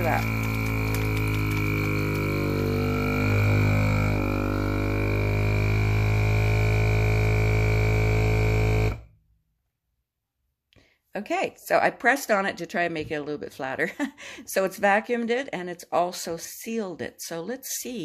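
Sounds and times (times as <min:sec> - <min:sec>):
vacuum sealer pump droning: 0:00.0 - 0:09.2.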